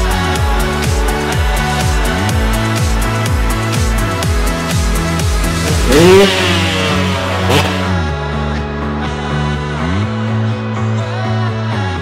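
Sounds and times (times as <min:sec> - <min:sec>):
motorcycle engine revving: 0:00.4 - 0:08.2.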